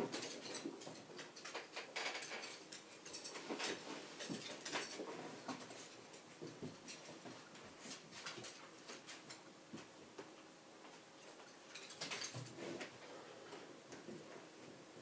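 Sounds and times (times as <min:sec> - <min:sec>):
dog claws clicking on floor: 0:00.0 - 0:10.3.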